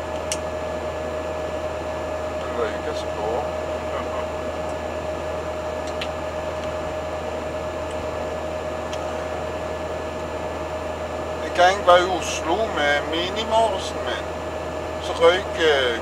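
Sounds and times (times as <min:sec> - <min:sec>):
steady whine: 0:00.0 - 0:16.0
vehicle cabin engine and road noise: 0:00.0 - 0:16.0.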